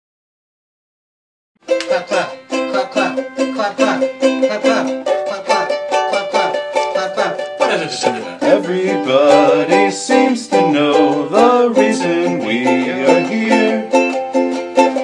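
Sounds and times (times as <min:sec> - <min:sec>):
plucked string instrument: 0:01.6 - 0:15.0.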